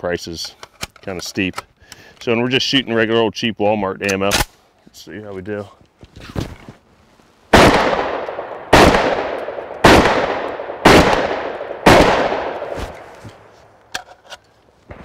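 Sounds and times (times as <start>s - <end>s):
shotgun shots: 7.5s - 13.0s.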